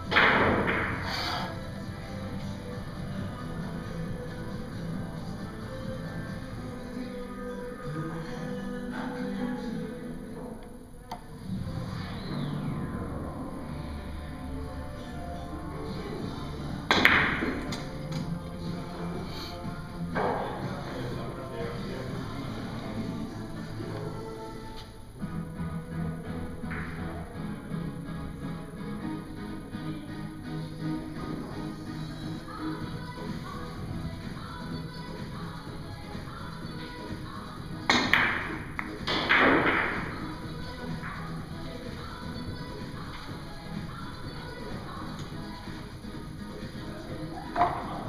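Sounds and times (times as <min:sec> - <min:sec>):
cue striking billiard ball: 0:16.9 - 0:17.7
billiard balls clicking: 0:16.9 - 0:18.3, 0:37.9 - 0:40.2.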